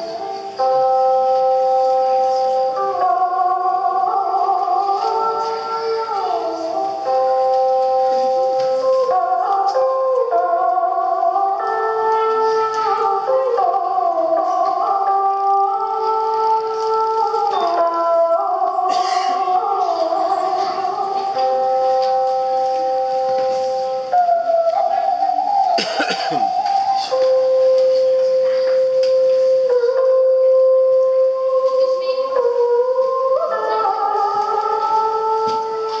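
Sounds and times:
monochord sliding melody: 0.0 - 36.0.

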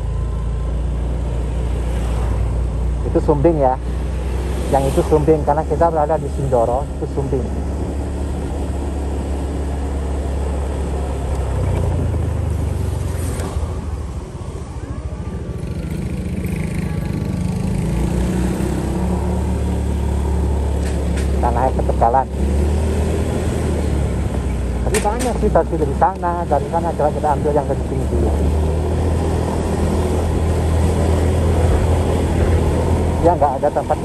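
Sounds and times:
person speaking: 3.0 - 3.9, 4.6 - 7.7, 21.3 - 22.4, 24.8 - 28.6, 33.1 - 34.0.

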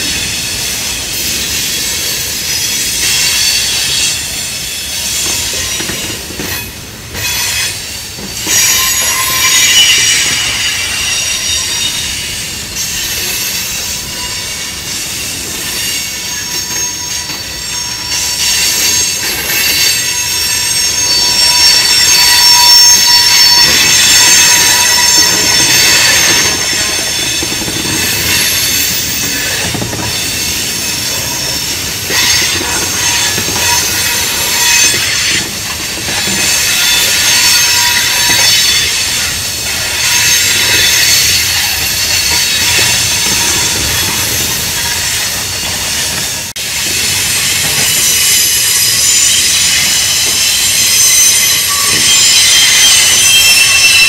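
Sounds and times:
train wheels squealing: 0.0 - 54.0.

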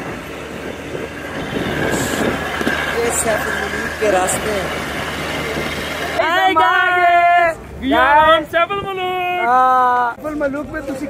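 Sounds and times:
vehicle rattling over bumps: 0.0 - 8.8.

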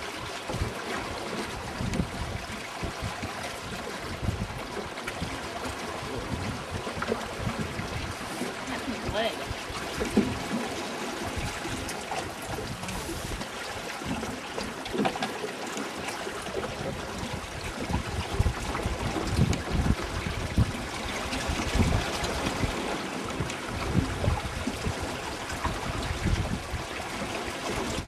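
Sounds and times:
wind buffeting microphone: 0.0 - 15.0, 16.4 - 28.0
water splashing along boat hull: 0.0 - 28.0.

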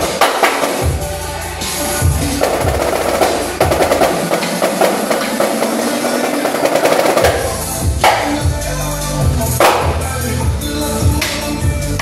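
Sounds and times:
marching snare drum rolls: 0.0 - 0.9, 2.2 - 8.2
dance music with deep bass: 0.0 - 12.0.

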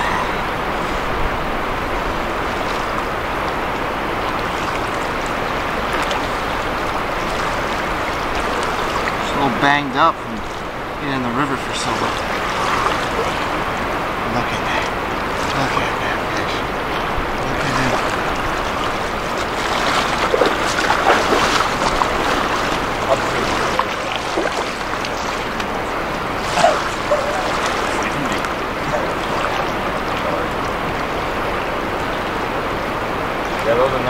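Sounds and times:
river current rushing: 0.0 - 34.0
water splashes: 0.0 - 34.0.

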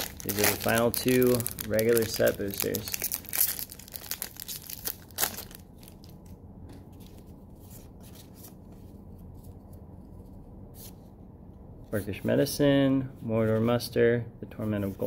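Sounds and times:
foil wrapper tearing and crinkling: 0.0 - 6.1
cards rustling: 0.0 - 9.7
low steady hum: 0.0 - 15.0.

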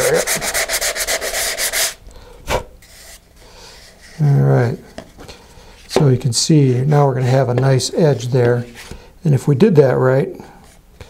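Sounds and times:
sandpaper stroke on paper: 0.0 - 2.0
faint rubbing: 2.8 - 7.0.

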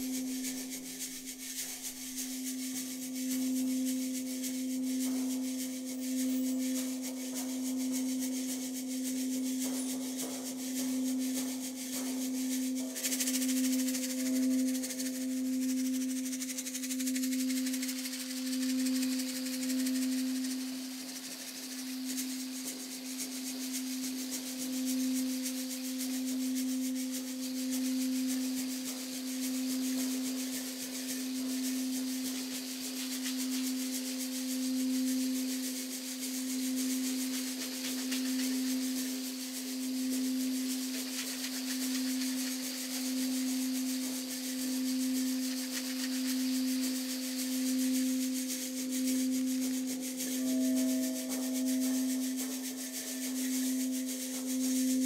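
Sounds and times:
singing bowl low tone: 0.0 - 55.0
higher singing bowl tone: 43.0 - 55.0.

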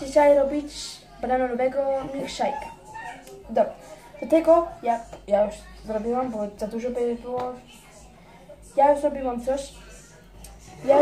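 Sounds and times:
girl talking: 0.0 - 11.0.

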